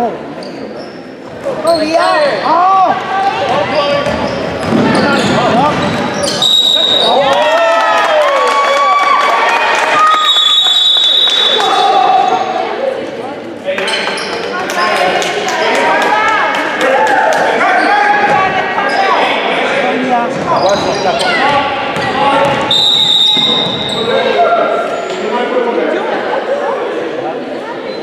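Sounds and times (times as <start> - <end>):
basketball bouncing on hardwood: 3.6 - 5.0.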